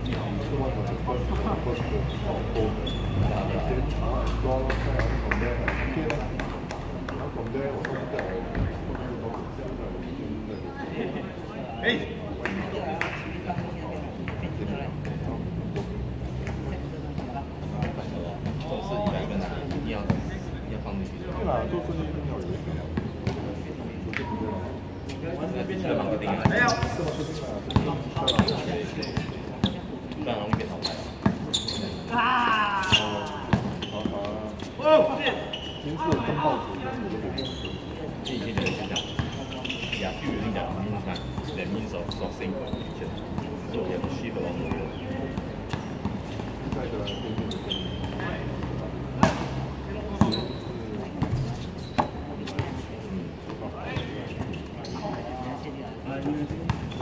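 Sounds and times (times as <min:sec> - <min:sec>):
players calling out: 0:30.8 - 0:50.7.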